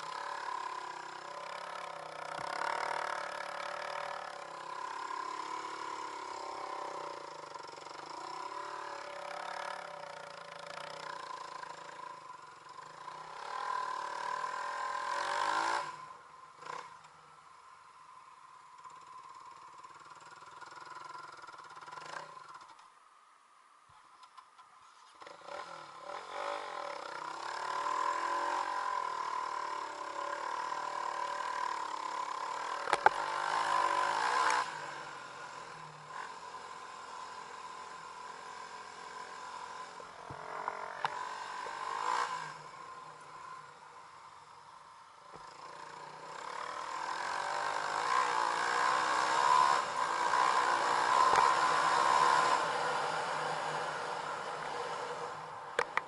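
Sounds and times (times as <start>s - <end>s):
dirt bike engine revving: 0.0s - 17.0s, 25.2s - 43.8s, 45.3s - 56.0s.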